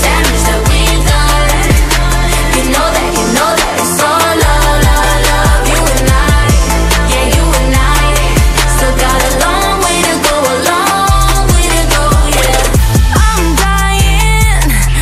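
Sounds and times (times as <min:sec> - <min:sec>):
female vocal group singing: 0:00.0 - 0:15.0
steady beat with deep bass: 0:00.0 - 0:15.0.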